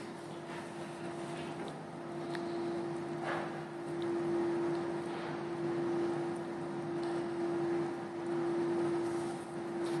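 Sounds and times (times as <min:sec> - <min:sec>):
constant machine whine: 0:00.0 - 0:10.0.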